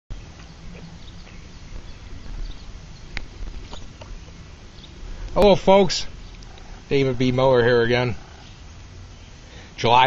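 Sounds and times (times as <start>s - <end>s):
steady low rumble: 0.1s - 10.0s.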